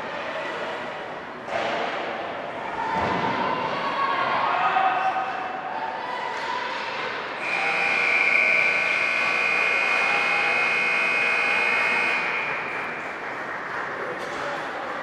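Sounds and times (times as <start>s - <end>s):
ice rink hum: 0.0s - 15.0s
scoreboard horn long tone: 7.4s - 12.6s.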